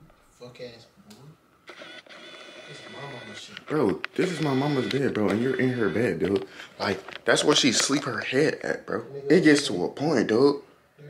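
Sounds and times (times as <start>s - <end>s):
small motor whirring: 1.7s - 6.2s.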